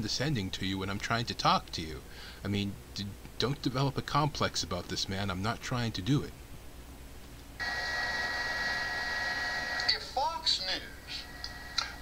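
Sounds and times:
steady electrical whine: 0:00.0 - 0:12.0.

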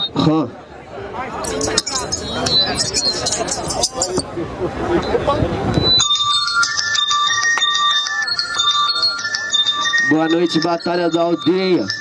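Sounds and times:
crowd voices and shouting: 0:00.0 - 0:12.0
rap instrumental beat: 0:06.0 - 0:12.0.

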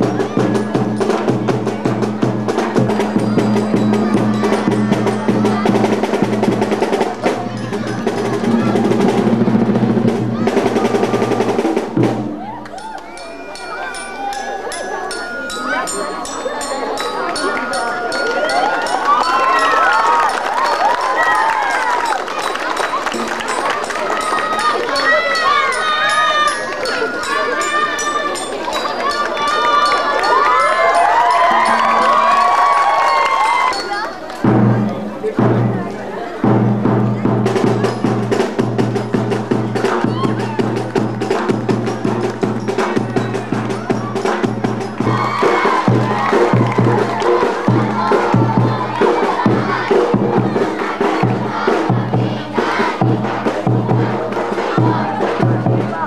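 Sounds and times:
children's voices: 0:00.0 - 0:56.0
crowd shouting and chanting: 0:00.0 - 0:56.0.

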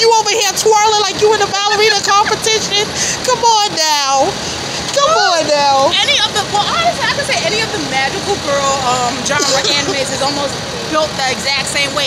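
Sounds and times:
women laughing hard: 0:09.4 - 0:10.2.

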